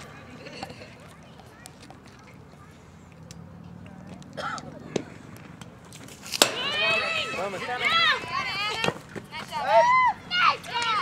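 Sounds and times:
excited high-pitched shouting: 9.5s - 11.0s.

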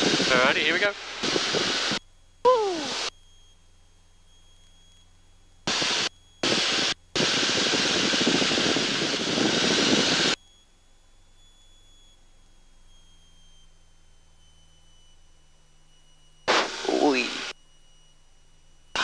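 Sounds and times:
rushing noise through microphone: 0.0s - 2.0s, 5.7s - 10.4s
faint steady hum: 0.0s - 19.0s.

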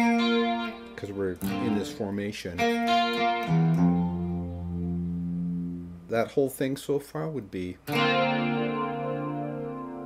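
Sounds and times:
electric guitar chord ringing: 0.0s - 6.1s, 7.8s - 10.0s.

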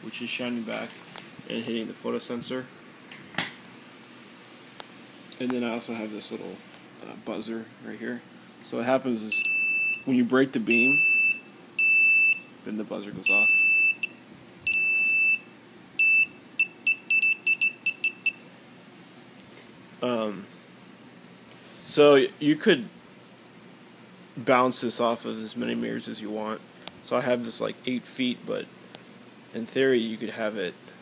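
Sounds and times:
low room hiss: 0.0s - 31.0s
alarm buzzer beeping: 9.3s - 10.1s, 10.7s - 12.5s, 13.2s - 18.4s.

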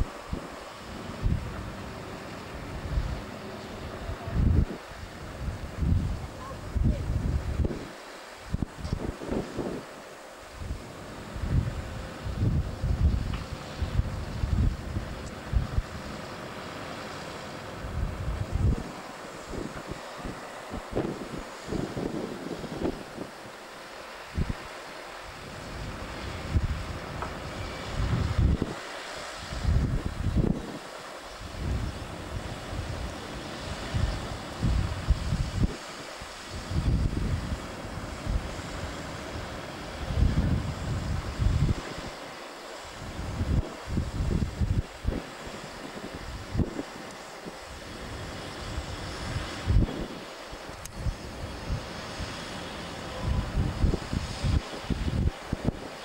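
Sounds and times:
wind buffeting microphone: 0.0s - 1.9s, 2.5s - 16.2s, 17.8s - 24.7s, 25.3s - 56.0s
faint steady hiss: 0.0s - 56.0s.

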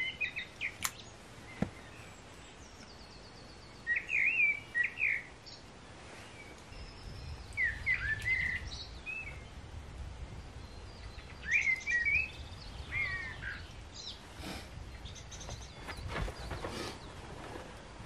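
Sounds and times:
songbird whistling: 2.8s - 5.3s, 6.4s - 9.5s, 10.7s - 14.2s.

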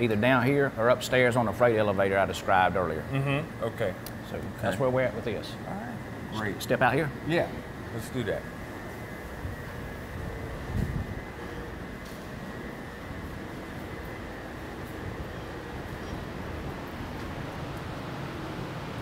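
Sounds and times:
faint high whine: 0.0s - 19.0s
low rumble and hiss: 0.0s - 19.0s.

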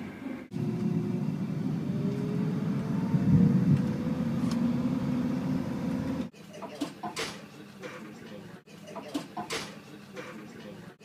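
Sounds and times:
vehicle engine accelerating: 0.4s - 6.3s.

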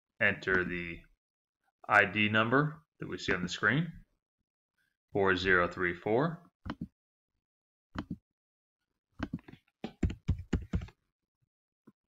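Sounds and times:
keyboard keys typing: 8.0s - 8.2s, 9.2s - 11.0s.

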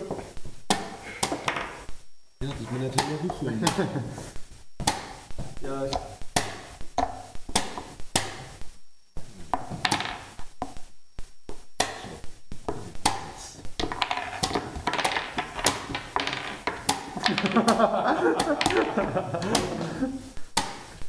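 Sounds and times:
chess pieces knocking on board: 0.7s - 1.8s, 9.4s - 10.8s, 11.8s - 21.0s.

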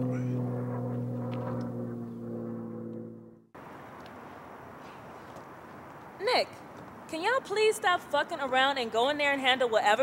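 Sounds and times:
low musical drone: 0.0s - 3.5s.

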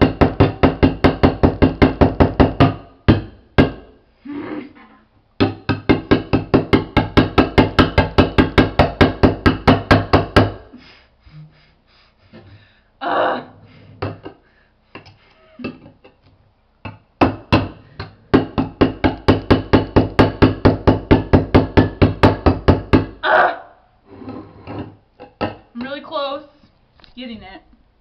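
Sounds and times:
scattered knocks: 0.0s - 3.9s, 5.4s - 10.6s, 16.8s - 23.2s.

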